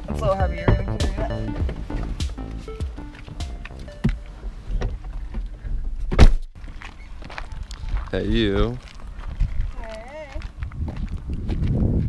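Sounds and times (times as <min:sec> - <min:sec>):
wind rumble on microphone: 0:07.1 - 0:12.0.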